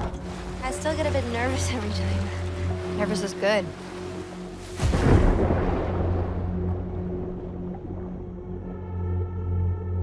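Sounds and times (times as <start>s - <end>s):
steady low drone: 0.0s - 10.0s
splash into water: 4.6s - 6.9s.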